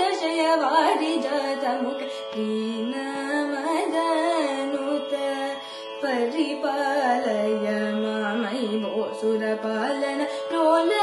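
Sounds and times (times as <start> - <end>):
woman singing ornamented vocal line: 0.0 - 11.0.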